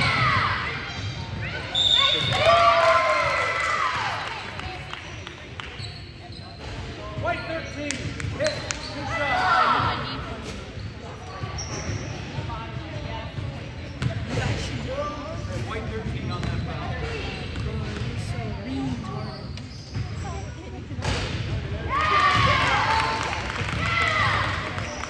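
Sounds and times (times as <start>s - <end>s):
voices echoing in a gym: 0.0s - 25.0s
sneakers squeaking on hardwood: 18.9s - 20.4s.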